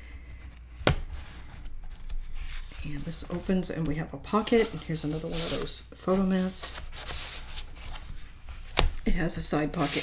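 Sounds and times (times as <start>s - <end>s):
paper rustling: 0.3s - 10.0s.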